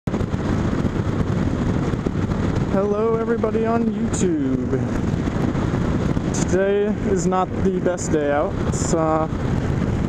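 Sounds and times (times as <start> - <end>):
motorcycle engine running: 0.1 - 10.0
wind rush over microphone: 0.1 - 10.0.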